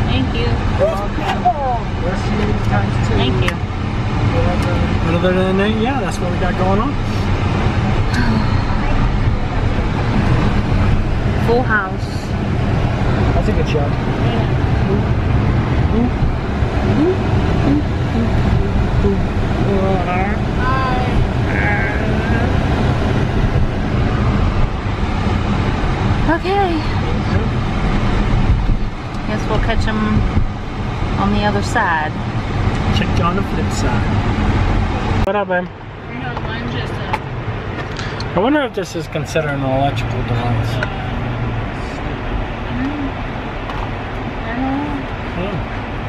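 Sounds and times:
car road noise from inside: 0.0 - 46.0.

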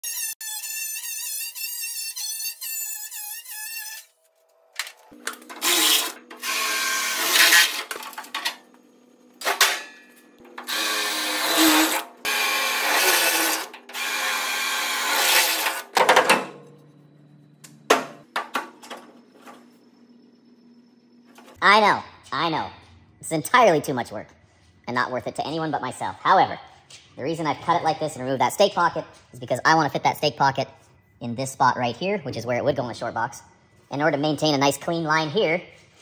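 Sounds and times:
angle grinder cutting sheet steel: 5.5 - 8.0, 10.6 - 16.0.

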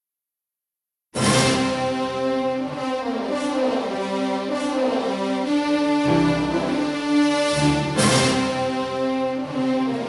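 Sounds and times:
orchestral music with brass: 1.2 - 10.0.

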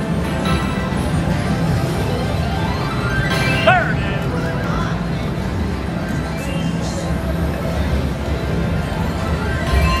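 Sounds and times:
slot machine spin music: 0.0 - 6.8, 7.6 - 10.0.

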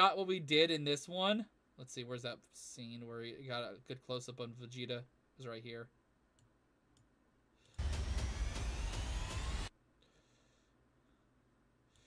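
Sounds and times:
rushing noise with rising whine: 7.8 - 9.7.

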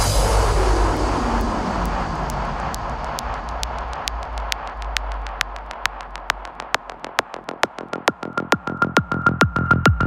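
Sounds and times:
falling swept noise effect: 0.0 - 6.2
heavy electronic hit: 0.0 - 6.8
deep sub-bass rumble: 0.0 - 7.9
crisp hi-hat ticks: 0.0 - 8.5.

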